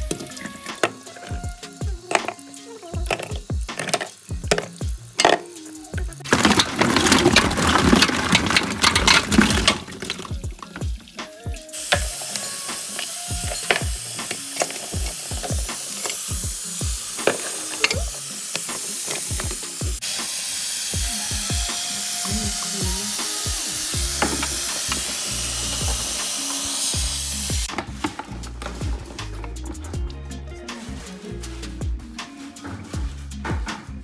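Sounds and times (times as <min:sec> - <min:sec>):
tap water running into bowl: 0:00.0 - 0:27.8.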